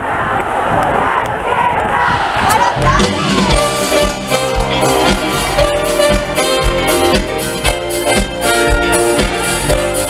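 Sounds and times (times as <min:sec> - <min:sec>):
concert crowd screaming and cheering: 0:00.0 - 0:10.0
band music: 0:02.5 - 0:10.0.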